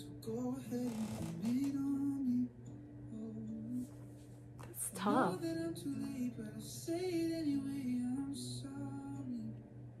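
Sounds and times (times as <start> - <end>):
pop song with male singer: 0.0 - 9.8.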